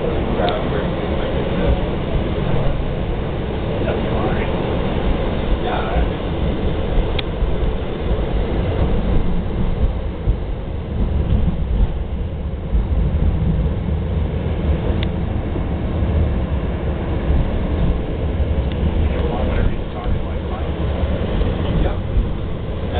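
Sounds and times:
light rail train rumble: 0:00.0 - 0:22.9.

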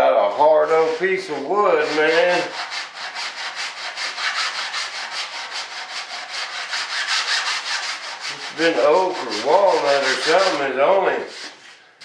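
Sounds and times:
sandpaper rubbing on wood: 0:00.2 - 0:11.8.

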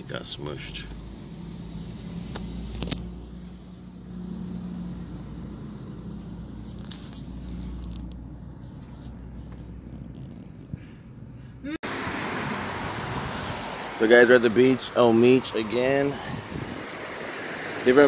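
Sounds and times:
car engine hum: 0:00.0 - 0:18.0
road noise: 0:00.0 - 0:18.0.

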